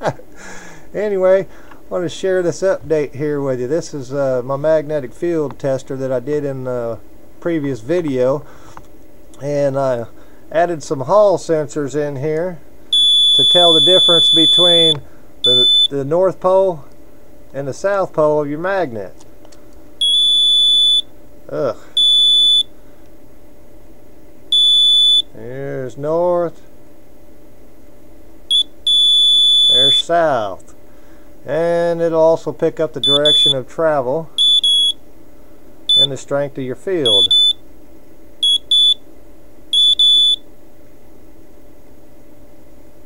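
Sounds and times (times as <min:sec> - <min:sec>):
faint steady hum: 0:00.0 - 0:43.0
high-pitched beeps: 0:13.0 - 0:15.9, 0:33.0 - 0:33.6, 0:37.1 - 0:37.6
high-pitched buzzer beep: 0:13.0 - 0:16.0, 0:20.0 - 0:21.1, 0:22.0 - 0:22.7, 0:24.5 - 0:25.3, 0:28.5 - 0:30.1, 0:33.0 - 0:33.6, 0:34.4 - 0:35.0, 0:35.9 - 0:36.2, 0:37.0 - 0:37.6, 0:38.4 - 0:39.0, 0:39.8 - 0:40.4.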